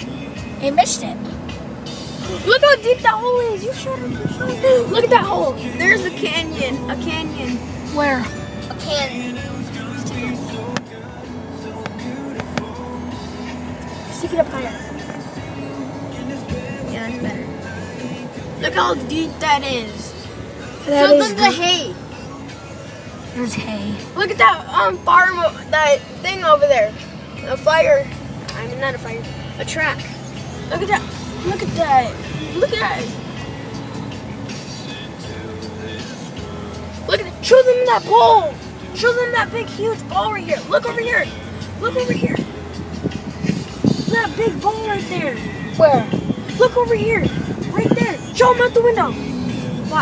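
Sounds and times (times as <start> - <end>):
music playing: 0.0 - 50.0
road and engine hum: 0.0 - 50.0.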